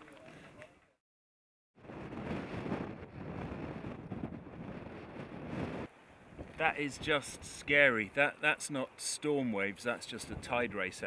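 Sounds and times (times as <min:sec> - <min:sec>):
gusty wind buffeting microphone: 0:01.8 - 0:07.8.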